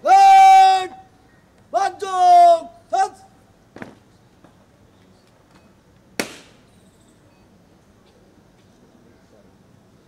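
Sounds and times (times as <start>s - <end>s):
sharp bang: 6.2s - 6.7s.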